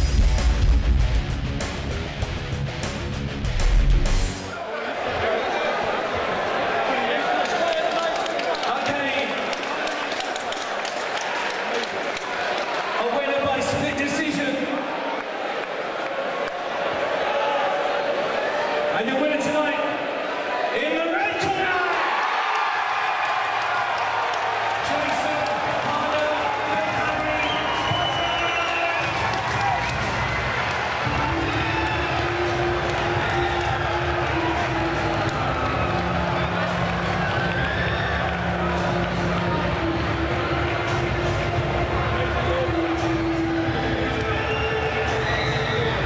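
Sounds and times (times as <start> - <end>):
music with thumping beat: 0.0 - 4.4
crowd noise: 0.0 - 46.0.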